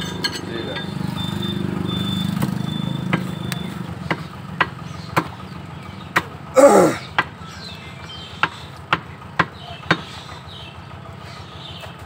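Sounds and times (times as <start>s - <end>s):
engine running: 0.0s - 12.0s.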